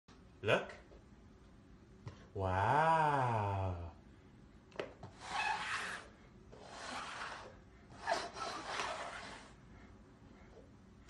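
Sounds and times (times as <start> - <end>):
cups scraping across wooden floor: 5.0 - 9.6.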